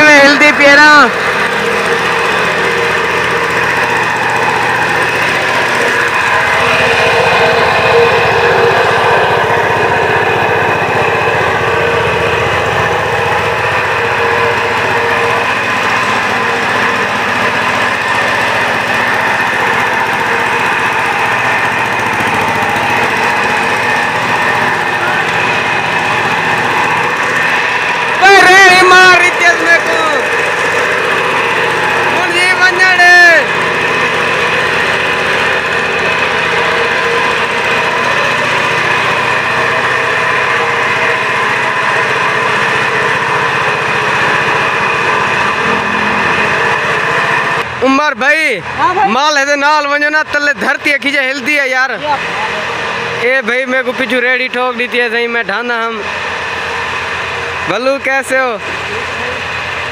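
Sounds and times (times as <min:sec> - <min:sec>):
vibratory roller running: 0:00.0 - 0:59.9.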